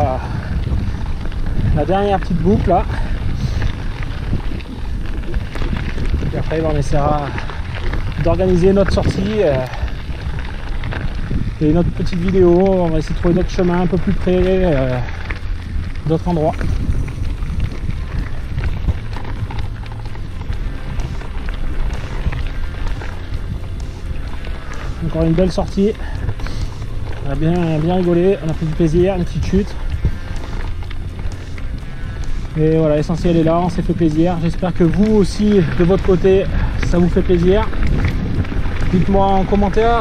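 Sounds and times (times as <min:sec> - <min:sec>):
bike tyres crunching on gravel: 0:00.0 - 0:40.0
small clicks and rattles: 0:00.0 - 0:40.0
wind on microphone: 0:00.0 - 0:40.0.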